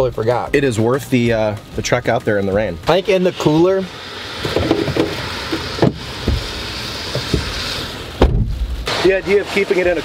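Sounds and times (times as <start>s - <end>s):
heavy thump: 5.8s - 6.5s, 8.2s - 8.8s
knocks: 5.8s - 6.5s, 8.2s - 8.6s.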